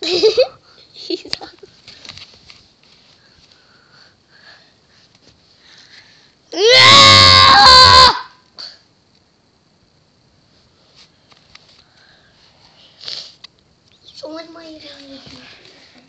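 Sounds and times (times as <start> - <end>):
faint handling noises: 1.2 - 3.7, 10.4 - 16.0
person screaming: 6.6 - 8.4.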